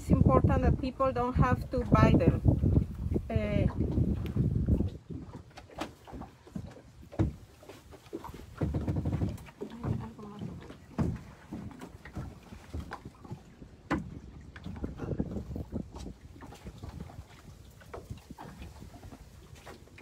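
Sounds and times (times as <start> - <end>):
knocks and thumps on boat: 0.0 - 20.0.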